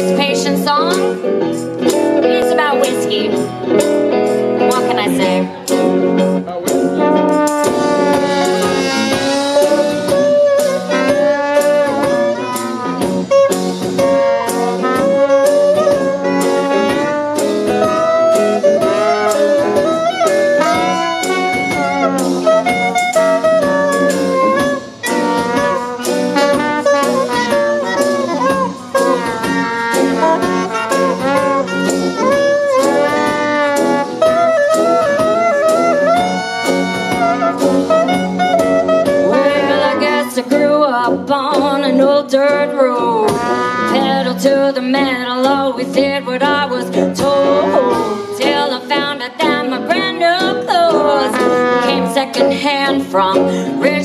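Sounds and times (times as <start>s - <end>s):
drums keeping a beat: 0.0s - 54.0s
guitar: 0.0s - 54.0s
saxophone: 0.0s - 54.0s
trombone: 0.0s - 54.0s
tuba: 3.4s - 54.0s
clarinet: 4.6s - 54.0s.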